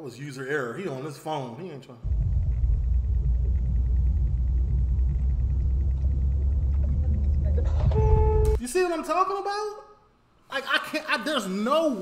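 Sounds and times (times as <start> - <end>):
car engine rumble: 2.0 - 8.6.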